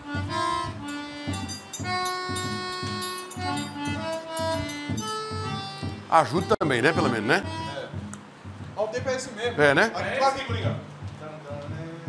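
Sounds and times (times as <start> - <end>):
harmonica melody: 0.0 - 10.1
hand drum beating: 0.2 - 12.0.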